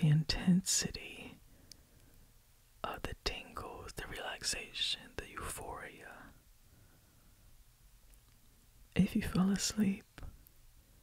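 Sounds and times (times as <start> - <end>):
man whispering: 0.0 - 1.4, 2.8 - 6.4, 9.0 - 10.4.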